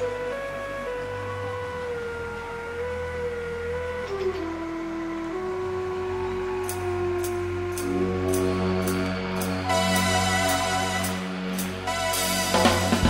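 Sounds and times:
slow instrumental band music: 3.8s - 13.0s
light high cymbal ticks: 6.6s - 12.6s.

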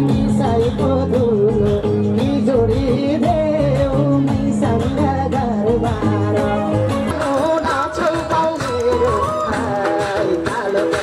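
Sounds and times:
steady bass line: 0.0s - 11.0s.

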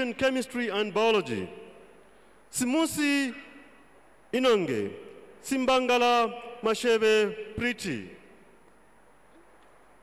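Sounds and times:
man's voice echoing: 0.0s - 8.6s.

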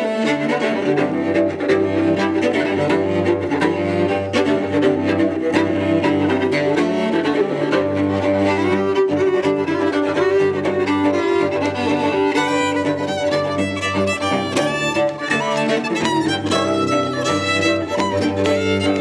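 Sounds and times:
cello low notes: 0.0s - 19.0s
fiddle melody: 0.0s - 19.0s.

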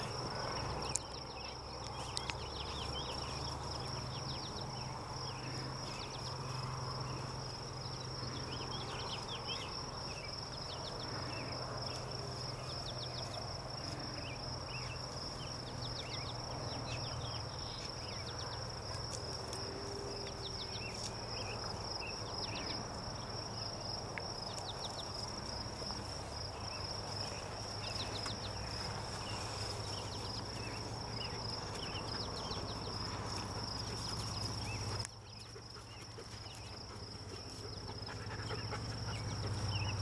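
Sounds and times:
high insect trill: 0.0s - 40.0s.

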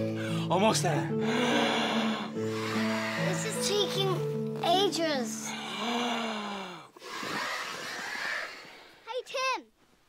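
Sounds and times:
background music: 0.0s - 7.1s
man blowing into inflatable bed: 1.2s - 3.4s, 5.5s - 9.0s.

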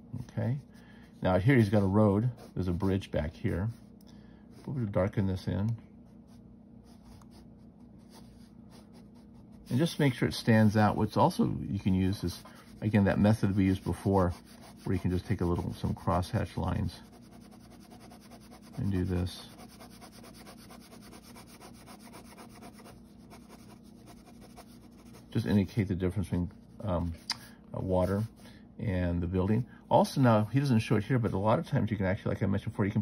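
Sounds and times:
pen scratching on paper: 17.0s - 25.6s.

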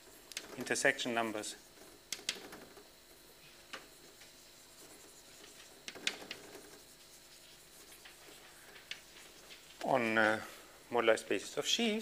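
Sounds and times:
chalk scratching on blackboard: 3.4s - 10.2s
chalk tapping on board: 3.7s - 9.8s.

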